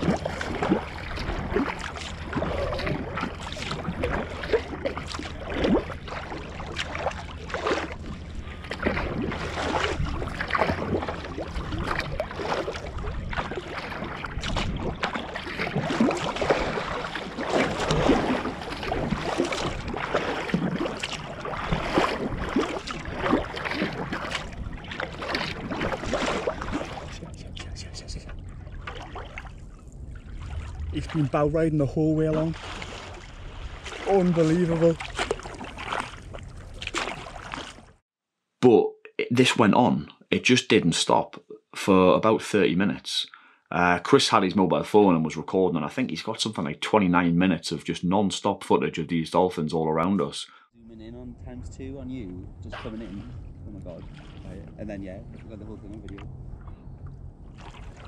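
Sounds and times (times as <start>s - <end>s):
paddle strokes splashing: 0.0s - 38.0s, 52.7s - 58.0s
water rushing along hull: 0.0s - 38.0s, 49.2s - 58.0s
wind rumble on microphone: 0.0s - 38.0s, 50.8s - 58.0s.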